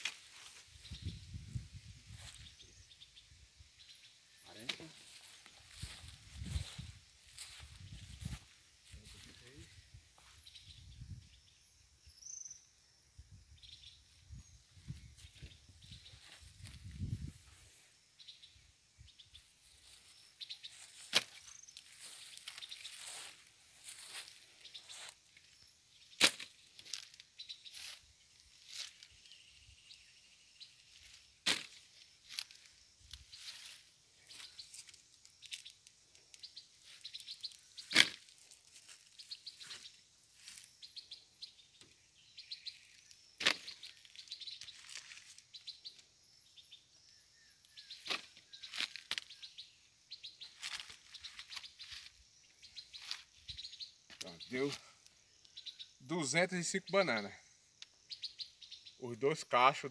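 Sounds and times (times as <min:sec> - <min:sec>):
small birds chirping: 0:00.0 - 0:59.9
sharp cracks: 0:26.2 - 0:26.6, 0:37.8 - 0:38.3.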